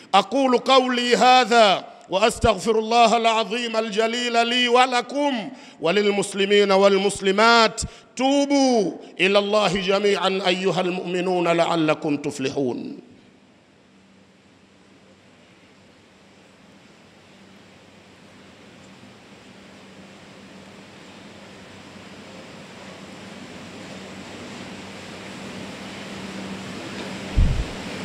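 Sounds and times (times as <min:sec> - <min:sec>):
faint electrical hum: 0:00.0 - 0:28.0
microphone system hiss: 0:27.2 - 0:28.0
low thump at microphones: 0:27.3 - 0:27.9.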